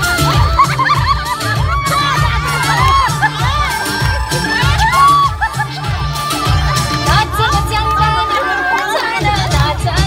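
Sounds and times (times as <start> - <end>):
crowd cheering and shouting: 0.0 - 10.0
loud dance music: 0.0 - 10.0.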